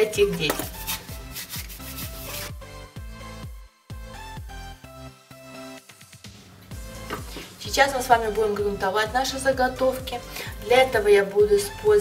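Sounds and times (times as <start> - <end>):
electronic music with steady beat: 0.2 - 10.8
wet wipe rubbing cardboard: 0.8 - 2.6.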